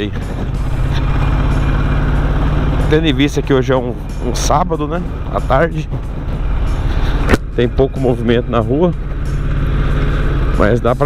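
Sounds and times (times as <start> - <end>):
motorcycle engine running: 0.0 - 11.0
road noise: 0.0 - 11.0.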